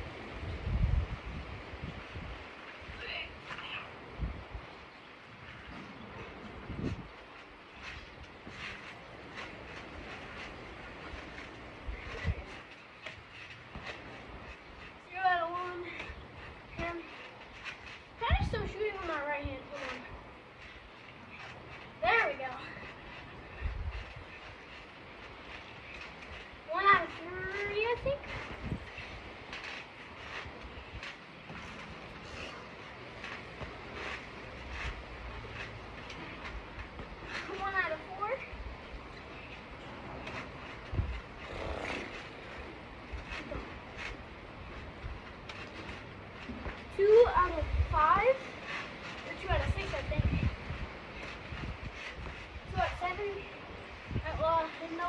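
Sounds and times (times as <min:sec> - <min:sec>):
trampoline thumps and rattles: 0:00.0 - 0:55.0.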